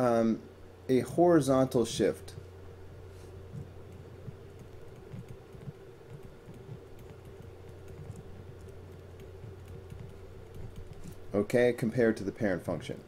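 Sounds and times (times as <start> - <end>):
low electrical hum: 0.0 - 13.0
stylus tapping on pen tablet: 3.6 - 11.2.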